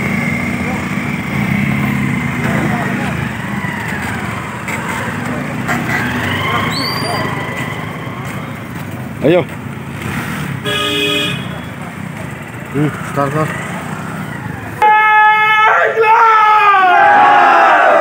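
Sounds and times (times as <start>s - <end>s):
motorcycle engines running: 0.0s - 14.8s
people shouting: 14.3s - 18.0s.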